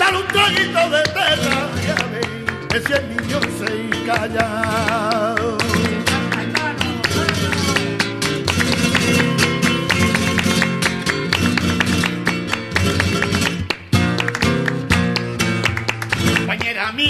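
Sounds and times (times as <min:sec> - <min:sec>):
flamenco guitar: 0:00.0 - 0:17.0.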